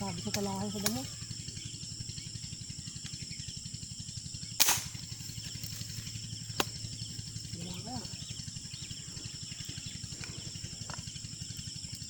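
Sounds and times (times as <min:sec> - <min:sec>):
low rapid pulsing: 0:00.0 - 0:12.0
air rifle shot: 0:04.6 - 0:05.1.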